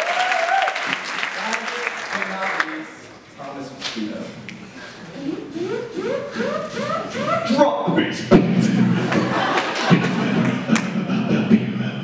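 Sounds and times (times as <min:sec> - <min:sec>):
beatboxing kick-drum thumps: 0:05.1 - 0:09.3, 0:09.9 - 0:12.0
beatboxed snare-like crack: 0:09.6 - 0:11.8.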